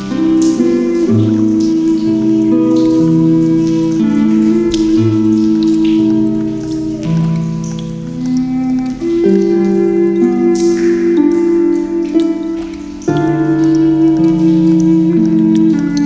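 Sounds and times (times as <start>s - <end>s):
flute playing long notes: 0.0s - 16.0s
harp playing: 0.0s - 16.0s
rain: 0.0s - 16.0s
water drops: 0.0s - 16.0s.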